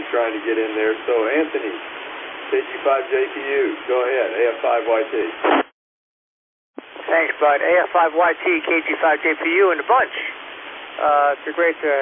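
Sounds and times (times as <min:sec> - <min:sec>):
faint radio hiss: 0:00.0 - 0:05.7, 0:06.8 - 0:12.0
radio noise burst: 0:05.1 - 0:05.7, 0:06.8 - 0:10.4
radio click: 0:05.4 - 0:05.7.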